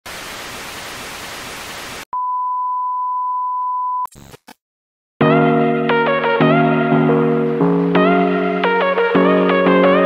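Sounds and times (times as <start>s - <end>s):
television static hiss: 0.1s - 2.0s.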